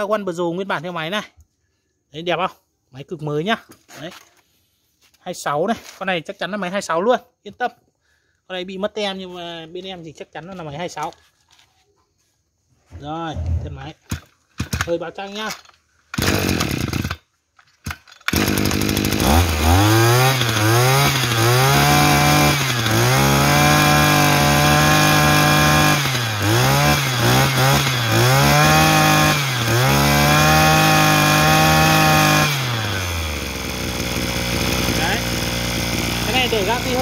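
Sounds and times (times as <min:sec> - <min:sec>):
starter cord pulls: 0:13.4 - 0:19.6
brush cutter engine revving: 0:16.1 - 0:37.0.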